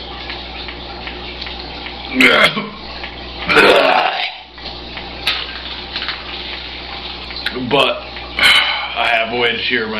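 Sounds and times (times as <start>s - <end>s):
man burping: 2.1s - 2.8s, 3.4s - 4.4s.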